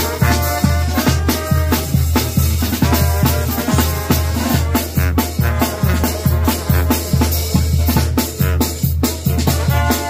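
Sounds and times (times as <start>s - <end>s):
drum kit beat: 0.0s - 10.0s
trumpets and trombones: 0.0s - 10.0s.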